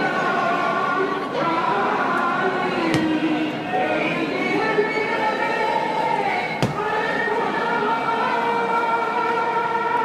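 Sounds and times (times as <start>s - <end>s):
sharp knock: 6.6s - 6.8s.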